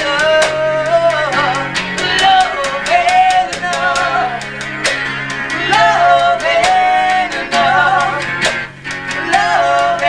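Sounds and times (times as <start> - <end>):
bass: 0.0 - 10.0
lead guitar melody: 0.0 - 10.0
steady drumbeat: 1.5 - 10.0.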